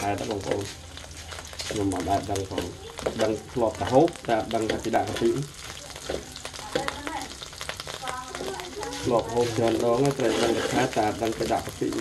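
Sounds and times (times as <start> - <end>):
paste sizzling in oil: 0.0 - 12.0
metal spatula scraping wok: 9.4 - 11.2.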